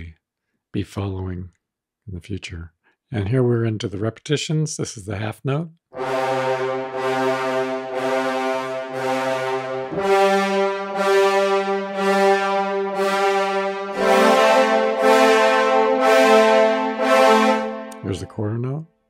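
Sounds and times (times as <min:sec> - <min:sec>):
french horn ensemble chords: 0:06.0 - 0:18.5.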